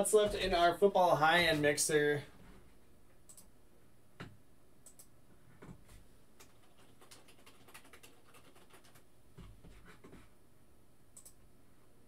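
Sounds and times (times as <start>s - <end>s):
keyboard and mouse clicks: 3.3s - 3.5s, 4.8s - 5.8s, 6.4s - 10.2s, 11.2s - 11.4s.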